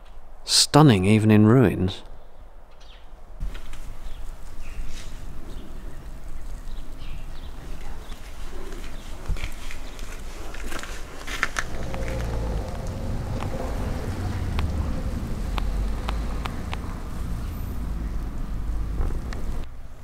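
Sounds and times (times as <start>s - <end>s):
faint clicks: 7.7s - 18.4s
low rumble: 11.4s - 19.7s.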